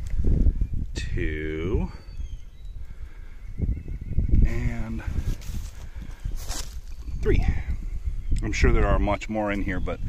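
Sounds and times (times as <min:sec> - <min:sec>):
footsteps through grass and leaves: 0:05.1 - 0:07.2.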